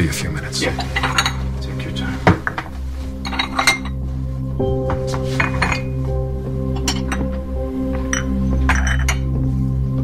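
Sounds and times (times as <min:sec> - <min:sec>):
soft background music: 0:00.0 - 0:10.0
crockery clinking: 0:00.6 - 0:01.6, 0:02.2 - 0:04.0, 0:04.9 - 0:07.4, 0:08.0 - 0:09.4.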